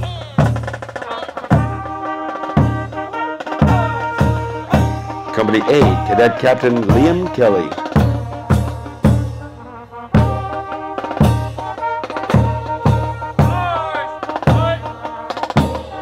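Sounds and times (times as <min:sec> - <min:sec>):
bass drum beats: 0:00.0 - 0:09.5, 0:10.2 - 0:16.0
snare drum: 0:00.0 - 0:09.5, 0:10.2 - 0:16.0
brass horns and saxophones: 0:00.0 - 0:16.0.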